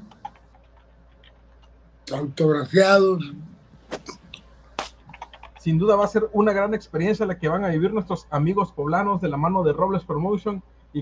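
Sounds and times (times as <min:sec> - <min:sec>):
faint small clicks and ticks: 0:00.0 - 0:01.8
low steady hum: 0:00.0 - 0:11.0.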